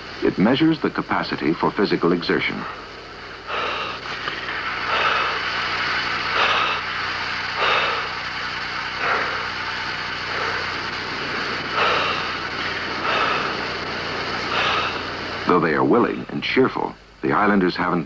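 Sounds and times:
low steady hum: 0.0 - 18.0
breathing through a mouthpiece: 2.7 - 5.6, 6.3 - 8.2, 11.7 - 13.8, 14.5 - 15.1.

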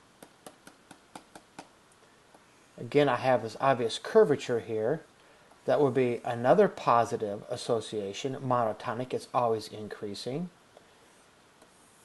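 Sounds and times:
stylus tapping on tablet screen: 0.2 - 2.5.

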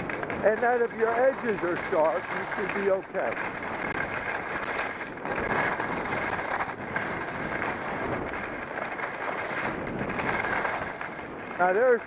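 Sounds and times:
skis scraping over snow: 0.0 - 12.0
wind buffeting microphone: 0.0 - 12.0.

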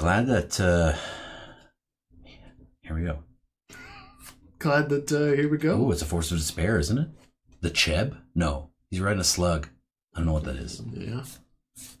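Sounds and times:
man speaking: 0.0 - 1.1, 4.6 - 11.5.

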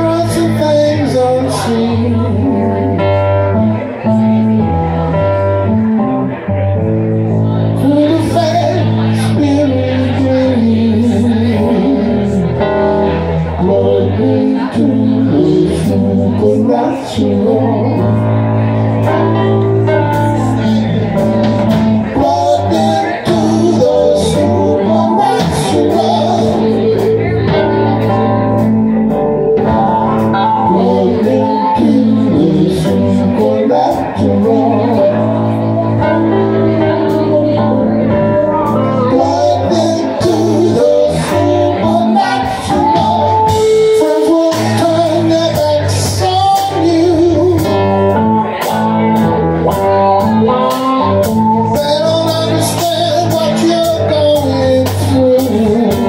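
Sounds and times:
electric guitar: 0.0 - 56.0
electric keyboard: 0.0 - 56.0
drum kit: 14.3 - 56.0.

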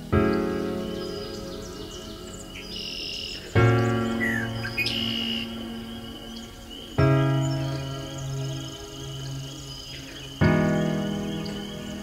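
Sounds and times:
birds chirping and whistling: 0.0 - 12.0.

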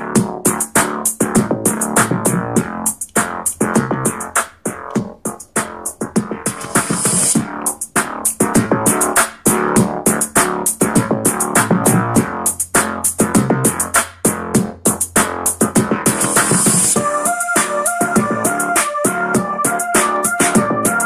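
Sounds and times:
electronic music through speaker: 0.0 - 21.0.

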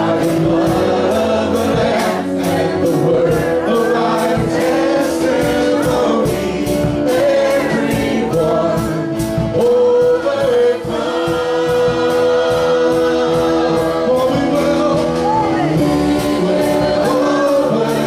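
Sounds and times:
gospel band playing: 0.0 - 18.0
group of voices singing: 0.0 - 18.0.

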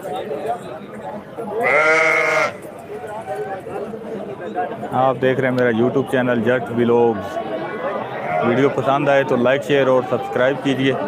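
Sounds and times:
low background voices: 0.0 - 11.0
sheep bleating: 1.6 - 2.6.

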